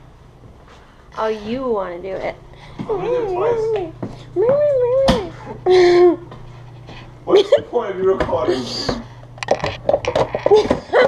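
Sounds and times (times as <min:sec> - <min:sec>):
plastic containers clattering: 0:08.9 - 0:11.0.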